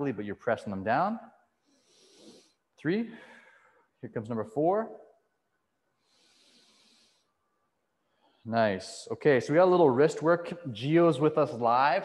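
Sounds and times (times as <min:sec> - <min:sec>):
faint slow breath: 0:01.6 - 0:03.9, 0:06.0 - 0:08.4.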